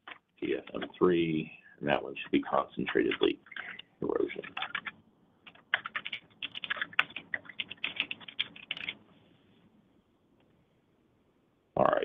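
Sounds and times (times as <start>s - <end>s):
computer keyboard typing: 2.4s - 9.0s.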